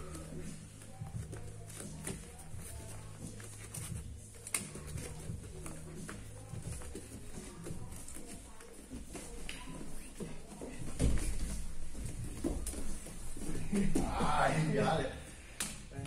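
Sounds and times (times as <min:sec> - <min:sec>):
bare feet shuffling on mat: 0:00.0 - 0:15.1
hands slapping and gripping: 0:03.3 - 0:06.2.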